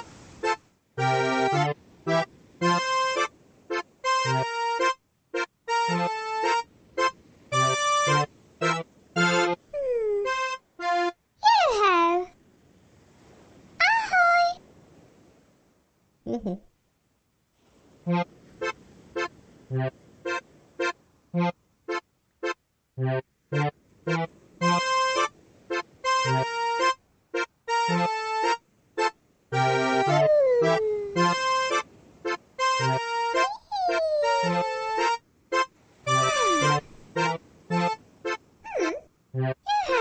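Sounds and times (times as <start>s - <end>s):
cartoon character meowing calls: 9.7s - 10.4s, 29.8s - 31.4s, 33.4s - 34.8s, 36.1s - 36.8s, 38.7s - 39.0s
bouncy accordion jig: 19.8s - 21.5s, 22.4s - 30.2s, 31.7s - 38.0s.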